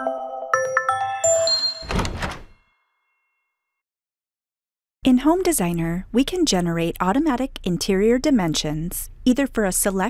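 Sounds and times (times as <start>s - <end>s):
bright ringing chime notes: 0.0s - 3.7s.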